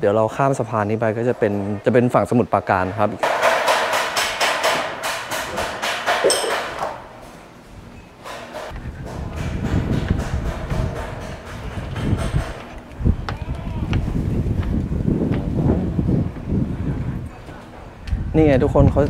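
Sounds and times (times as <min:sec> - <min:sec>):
footsteps on wooden stairs: 0:08.7 - 0:15.6
wind rumble on microphone: 0:08.7 - 0:19.0.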